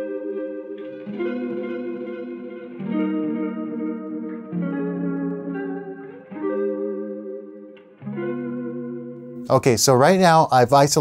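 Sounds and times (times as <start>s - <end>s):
muffled echoing guitar chords: 0.0s - 10.5s.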